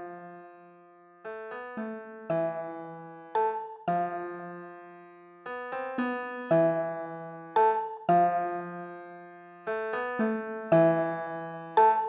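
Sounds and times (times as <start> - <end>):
keyboard piano chords: 0.0 - 12.0.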